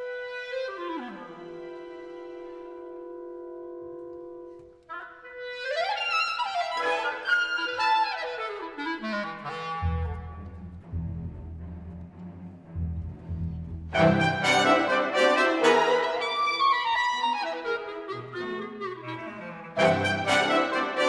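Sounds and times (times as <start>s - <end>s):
solo clarinet: 0.0s - 11.0s, 14.0s - 21.0s
low sustained orchestral notes: 9.8s - 21.0s.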